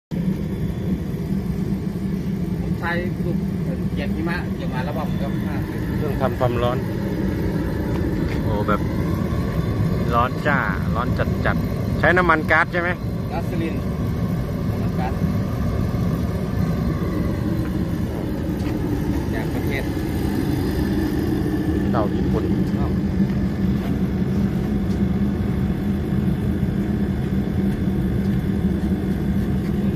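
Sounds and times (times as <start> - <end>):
forced-air heater roaring: 0.1 - 29.9.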